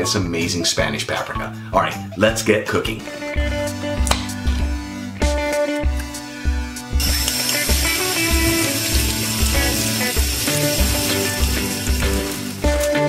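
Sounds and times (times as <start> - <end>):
background music with bass beat: 3.1 - 13.0
tap water running into sink: 7.0 - 13.0.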